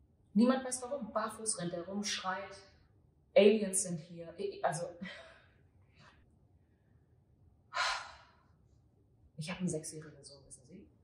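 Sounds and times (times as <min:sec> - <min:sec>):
faint breath: 0:07.7 - 0:08.5.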